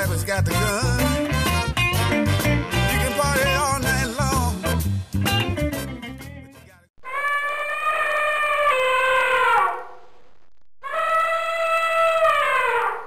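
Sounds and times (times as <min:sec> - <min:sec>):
elephant trumpeting: 0:07.0 - 0:09.9, 0:10.8 - 0:13.0.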